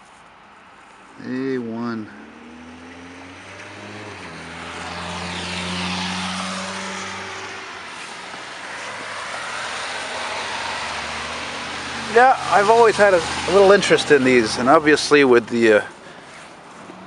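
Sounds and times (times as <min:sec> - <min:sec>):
traffic noise: 0:00.0 - 0:17.0
vehicle engine hum: 0:01.1 - 0:17.0
tyres hissing on wet street: 0:03.7 - 0:16.8.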